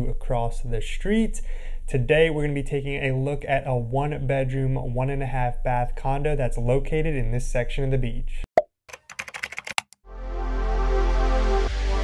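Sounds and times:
music chord with deep bass: 0:10.1 - 0:12.0.

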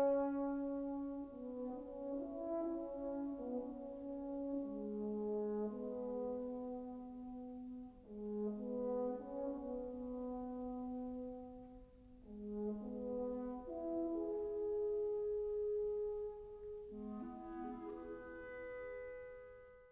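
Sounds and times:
french horn solo: 0:00.0 - 0:19.9.

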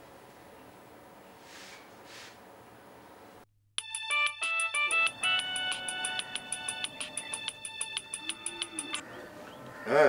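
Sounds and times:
mobile phone ringtone melody: 0:03.8 - 0:09.0.

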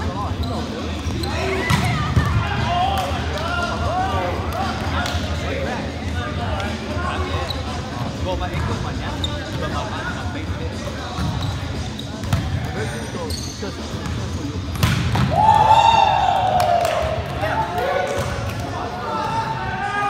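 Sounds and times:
players talking and calling: 0:00.0 - 0:20.0.

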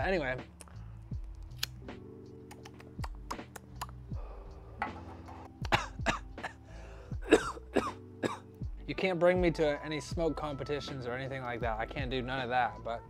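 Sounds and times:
lighter clicking: 0:00.6 - 0:01.9
throat clearing: 0:05.6 - 0:06.6.

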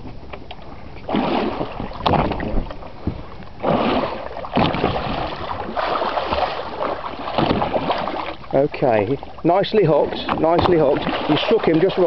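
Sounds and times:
water slapping against boat: 0:00.0 - 0:12.0
wind buffeting microphone: 0:00.0 - 0:12.0.

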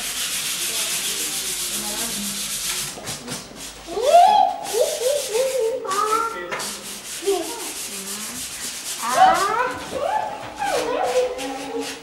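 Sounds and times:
fast rubbing or scraping: 0:00.0 - 0:12.0.

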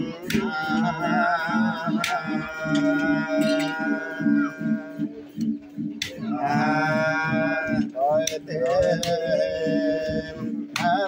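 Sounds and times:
person singing unaccompanied: 0:00.0 - 0:11.0.

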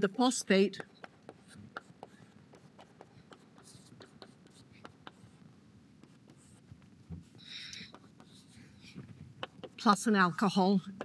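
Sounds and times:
chalk tapping and scratching on blackboard: 0:00.1 - 0:11.0.

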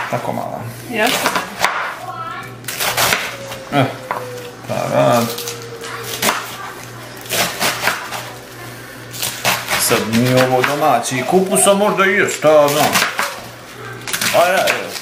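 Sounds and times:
low voices: 0:00.6 - 0:09.2, 0:09.8 - 0:15.0
knife chopping on wooden board: 0:01.1 - 0:01.9.

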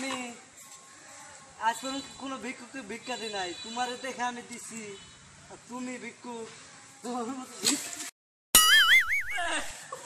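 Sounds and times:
cartoon boing sound effect: 0:08.6 - 0:09.6.

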